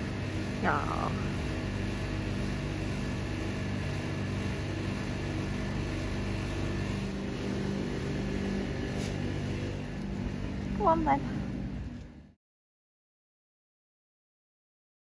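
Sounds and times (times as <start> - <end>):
low mechanical hum: 0.0 - 12.4.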